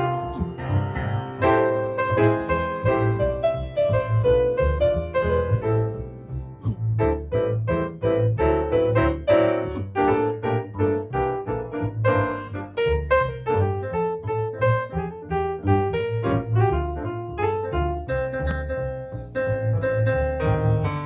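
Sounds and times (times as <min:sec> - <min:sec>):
jazz piano: 0:00.0 - 0:21.0
plucked double bass: 0:00.0 - 0:21.0.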